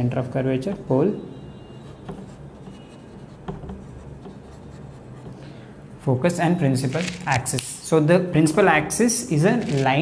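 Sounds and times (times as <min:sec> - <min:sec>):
marker writing on whiteboard: 0:00.5 - 0:05.6.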